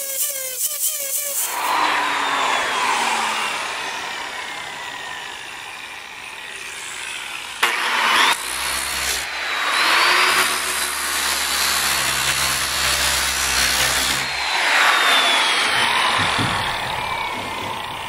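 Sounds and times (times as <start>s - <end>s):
disc sander whining: 0.0s - 18.0s
sander grinding into wood: 0.0s - 18.0s.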